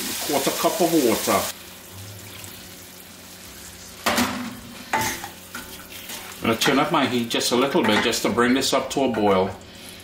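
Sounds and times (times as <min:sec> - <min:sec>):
sauce sizzling in a pan: 0:00.0 - 0:10.0.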